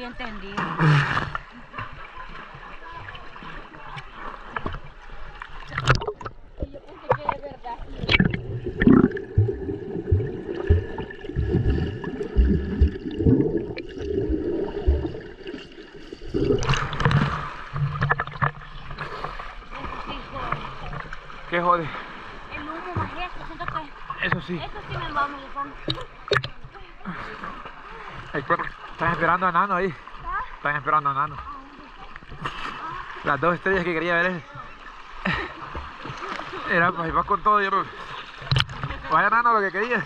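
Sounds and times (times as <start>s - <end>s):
water splashing and gurgling: 0.0s - 40.0s.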